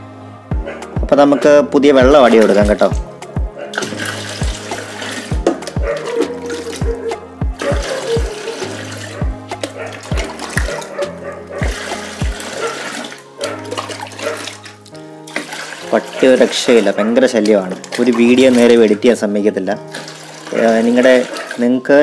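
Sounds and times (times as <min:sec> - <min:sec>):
background music with steady beat: 0:00.0 - 0:22.0
water pouring and splashing: 0:02.0 - 0:03.1, 0:03.7 - 0:22.0.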